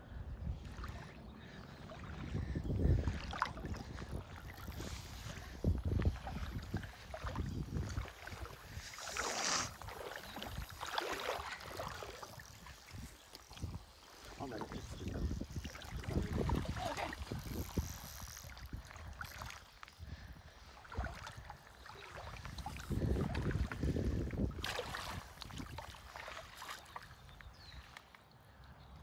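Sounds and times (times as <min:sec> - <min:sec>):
wind buffeting on microphone: 0:00.0 - 0:10.9, 0:11.5 - 0:26.2
water sloshing and splashing: 0:00.5 - 0:28.3.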